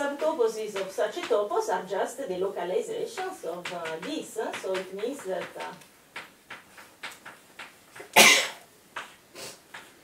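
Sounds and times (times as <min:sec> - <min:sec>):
person coughing: 0:08.2 - 0:08.6.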